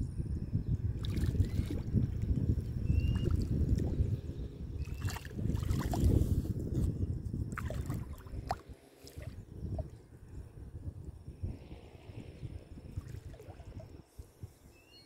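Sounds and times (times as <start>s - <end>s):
water lapping against rock: 4.9s - 6.4s, 7.5s - 9.4s.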